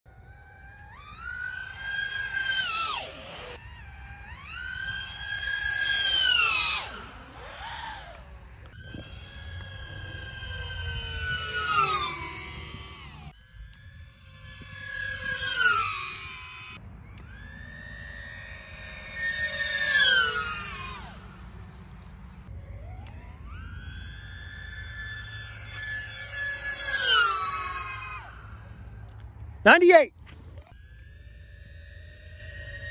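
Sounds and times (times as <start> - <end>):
racing drone whine flying past: 0.1 - 32.9.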